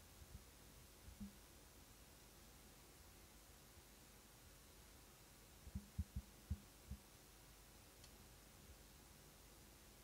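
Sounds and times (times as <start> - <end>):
soft low thumps: 1.1 - 1.4, 5.7 - 7.1.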